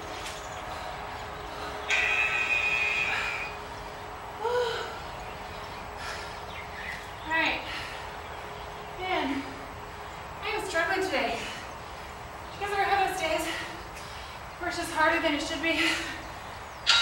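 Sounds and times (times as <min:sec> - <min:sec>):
woman breathing hard: 0:00.6 - 0:05.3, 0:05.9 - 0:06.6.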